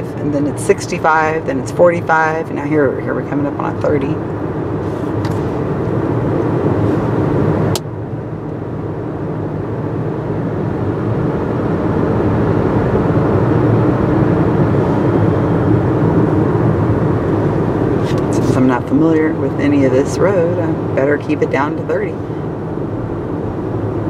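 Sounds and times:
road and engine rumble: 0.0 - 24.0.

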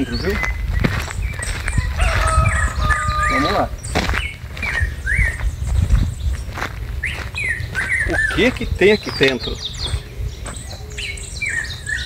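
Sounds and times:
small birds chirping: 0.0 - 12.0
rooster crowing: 1.6 - 3.8.

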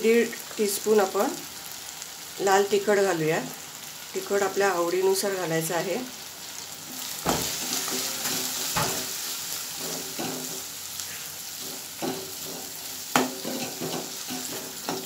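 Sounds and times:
food sizzling in oil: 0.0 - 15.0.

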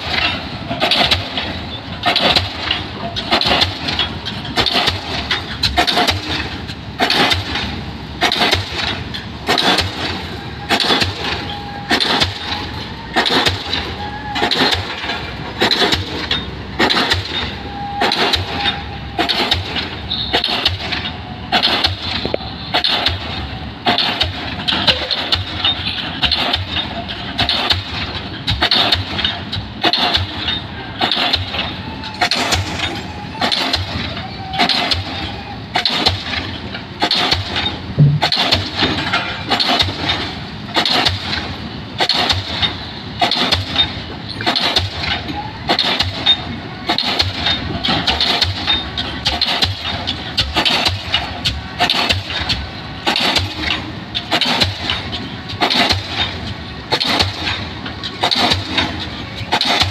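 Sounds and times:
pile hammer striking pile: 27.4 - 59.9.

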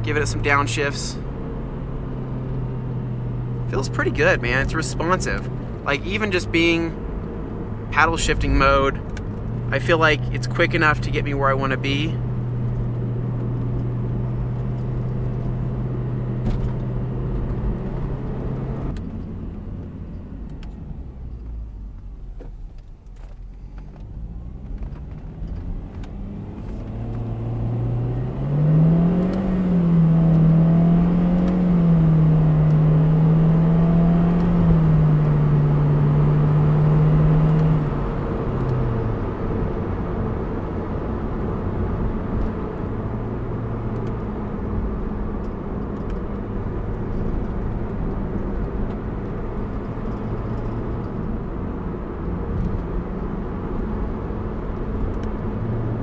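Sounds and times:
car engine from inside cabin: 0.0 - 56.0
tyre and road noise: 0.0 - 56.0.

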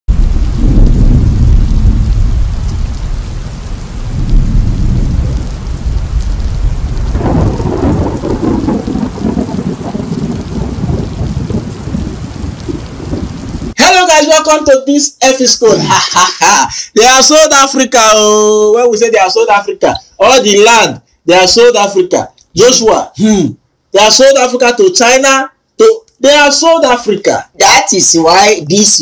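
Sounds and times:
rolling thunder: 0.1 - 13.8
steady rain: 0.1 - 29.0.

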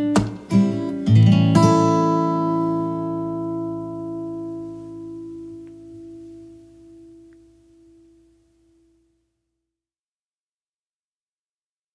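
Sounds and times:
acoustic guitar chord ringing: 0.0 - 9.0.

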